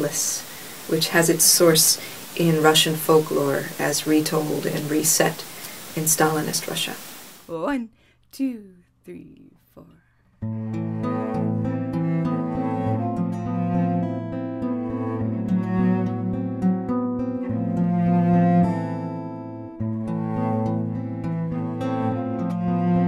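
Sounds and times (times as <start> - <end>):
acoustic guitar picked and strummed: 10.4 - 23.0
cello sustained low notes: 10.4 - 23.0.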